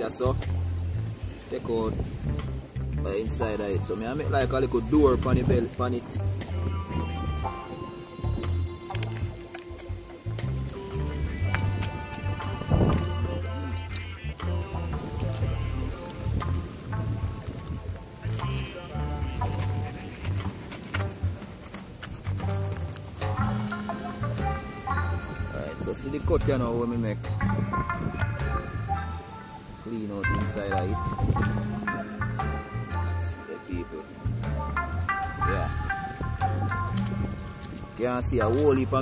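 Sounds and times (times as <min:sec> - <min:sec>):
bass line: 0:00.0 - 0:01.3, 0:01.9 - 0:21.4, 0:22.2 - 0:29.3, 0:30.2 - 0:39.0
sustained melody notes: 0:00.0 - 0:39.0.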